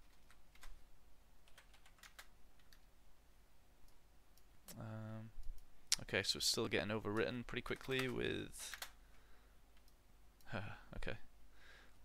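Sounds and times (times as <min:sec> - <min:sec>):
keyboard typing: 0:00.0 - 0:00.8, 0:01.4 - 0:02.9, 0:07.1 - 0:09.0.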